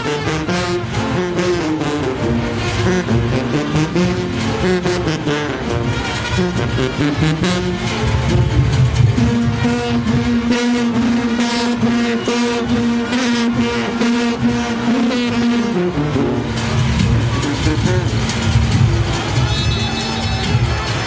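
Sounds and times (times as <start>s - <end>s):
brass section playing: 0.0s - 21.0s
steady beat: 0.0s - 21.0s.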